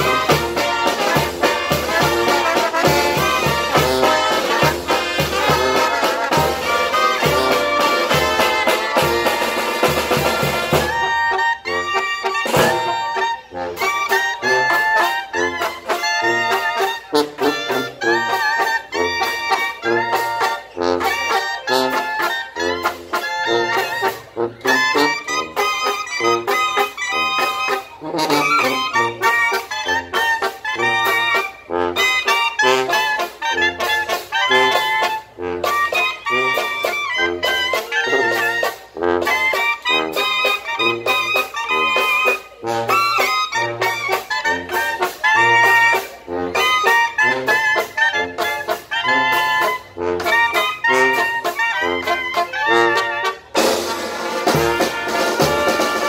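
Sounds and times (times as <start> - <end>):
snare drum: 0.0 - 11.2, 12.3 - 13.2, 53.0 - 56.0
clarinets playing melody: 0.0 - 56.0
trumpets and trombones: 0.0 - 56.0.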